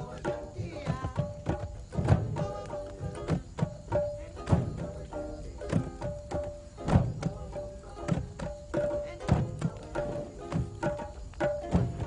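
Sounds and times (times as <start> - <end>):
deep bass drum strikes: 0.0 - 12.0
lighter hand drum strokes: 0.0 - 12.0.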